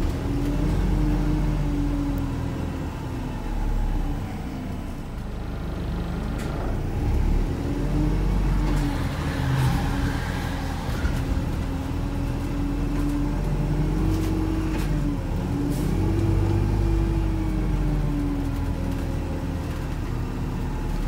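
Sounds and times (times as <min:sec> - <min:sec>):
bus engine rumble from inside: 0:00.0 - 0:21.0.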